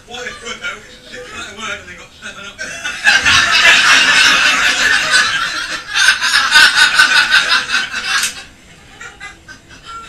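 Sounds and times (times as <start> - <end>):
group of people laughing: 2.2 - 10.0.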